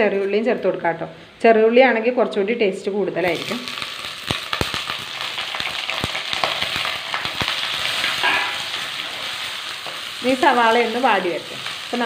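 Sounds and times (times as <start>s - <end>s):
onion sizzling in hot oil: 3.3s - 12.0s
sharp clicks and pops: 3.6s - 8.1s.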